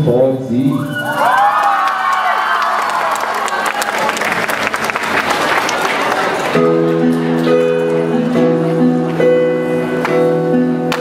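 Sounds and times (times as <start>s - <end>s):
audience cheering and yelling: 0.7s - 6.7s
audience applauding: 1.1s - 7.5s.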